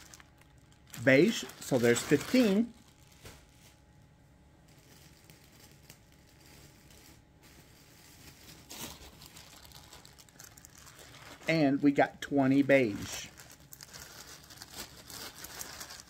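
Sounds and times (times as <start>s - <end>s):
plastic bag crinkling: 0.0s - 3.9s, 4.6s - 16.0s.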